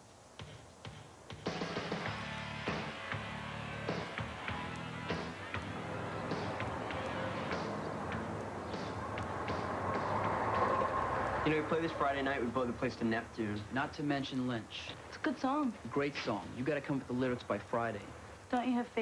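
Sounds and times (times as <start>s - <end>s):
drums keeping beat: 0.0s - 10.8s
rock band instrumental: 1.5s - 8.0s.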